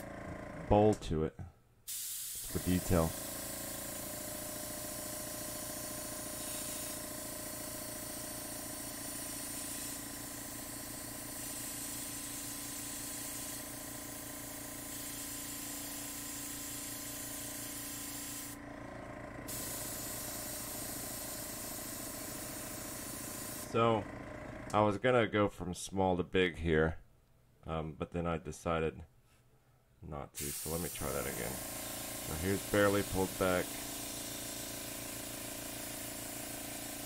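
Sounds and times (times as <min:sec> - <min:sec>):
airbrush spraying hiss: 0:01.9 - 0:18.6, 0:19.5 - 0:23.7, 0:30.4 - 0:37.0.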